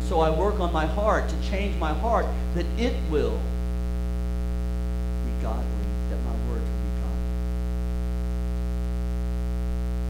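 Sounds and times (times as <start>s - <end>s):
low electrical mains hum: 0.0s - 10.0s.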